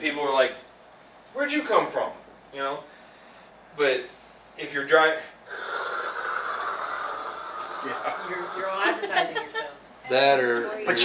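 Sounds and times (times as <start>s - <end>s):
man making hissing mouth noise: 5.5s - 9.0s.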